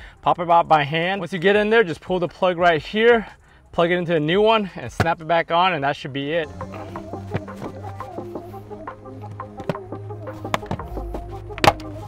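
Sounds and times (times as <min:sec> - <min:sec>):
background music with held notes: 0:06.4 - 0:12.0.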